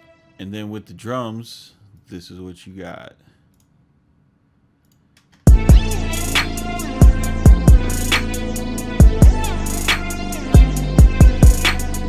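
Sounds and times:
man speaking: 0.4s - 3.4s.

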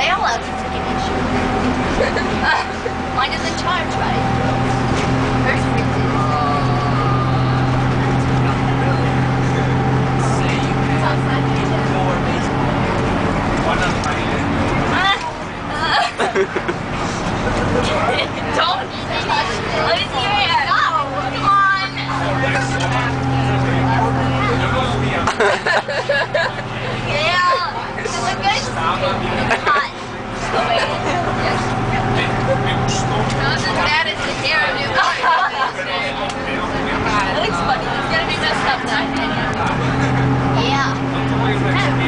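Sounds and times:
bus engine droning: 0.0s - 42.0s
passengers chattering: 0.0s - 42.0s.

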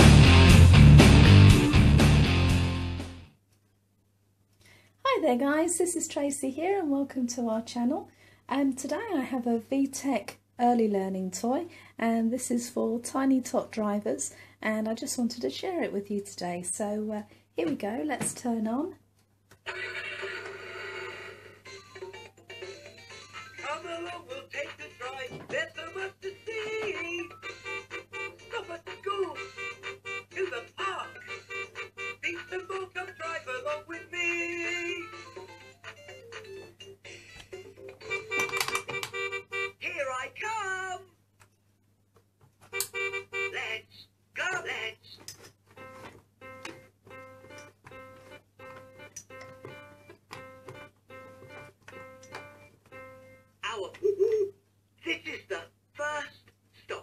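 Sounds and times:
recorded voice: 5.0s - 19.0s, 23.6s - 27.4s, 28.4s - 31.5s, 32.2s - 35.3s, 39.8s - 41.2s, 43.4s - 45.3s, 53.6s - 57.0s
toy electronic melodies: 26.4s - 33.9s, 34.7s - 39.8s, 42.7s - 43.6s.

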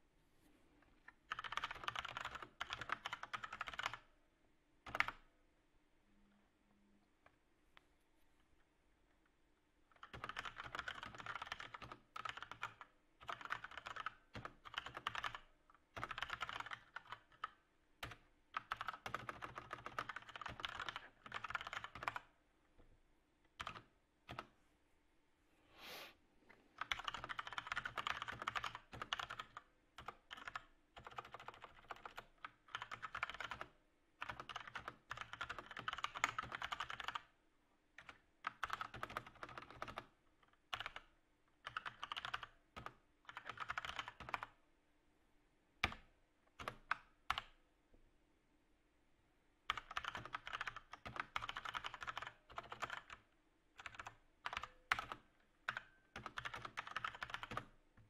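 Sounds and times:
typing on computer keyboard: 1.3s - 4.1s, 4.8s - 5.3s, 9.9s - 22.4s, 23.5s - 24.5s, 26.8s - 37.4s, 38.0s - 44.6s, 45.8s - 47.6s, 49.7s - 57.8s.

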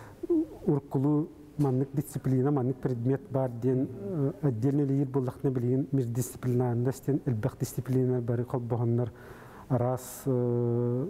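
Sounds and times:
man speaking: 0.3s - 11.0s.

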